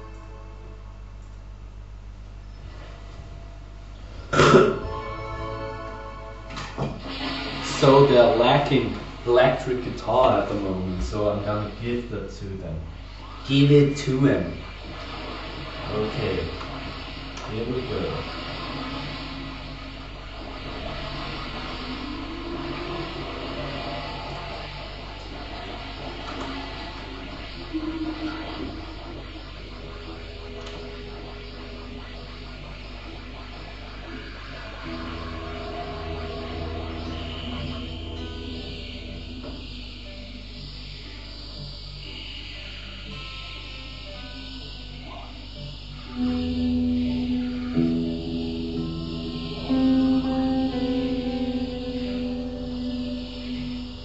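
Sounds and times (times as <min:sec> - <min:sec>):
ambient electric guitar: 0:13.0 - 0:41.1, 0:42.2 - 0:54.0.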